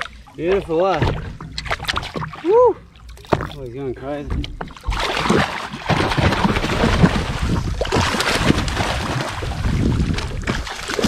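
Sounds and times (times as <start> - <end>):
fish thrashing and splashing: 0.0 - 3.7, 4.3 - 11.0
wind on microphone: 6.1 - 10.6.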